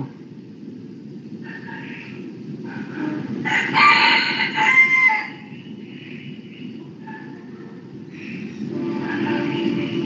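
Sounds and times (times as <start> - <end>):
steady low background noise: 0.0 - 10.0.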